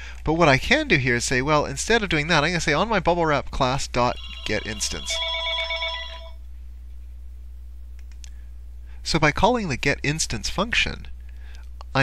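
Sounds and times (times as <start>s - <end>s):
steady low hum: 0.0s - 12.0s
ringing tone: 4.0s - 6.4s.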